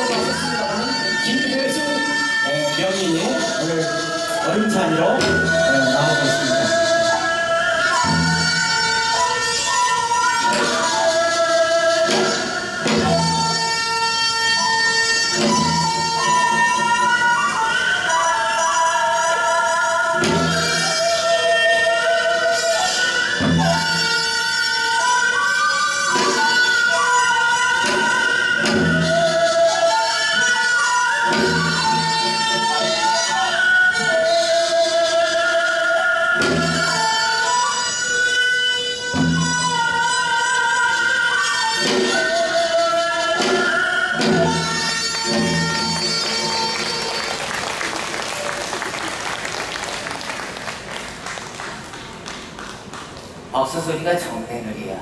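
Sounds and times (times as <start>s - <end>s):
drum strikes: 0.0s - 1.1s, 4.3s - 6.8s, 10.3s - 16.9s
traditional melody bending in pitch: 0.0s - 50.0s.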